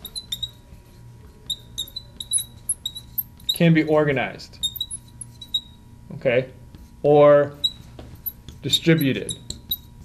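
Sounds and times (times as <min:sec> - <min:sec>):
marker squeaking on glass: 0:00.0 - 0:03.9, 0:04.6 - 0:05.8, 0:07.5 - 0:10.0.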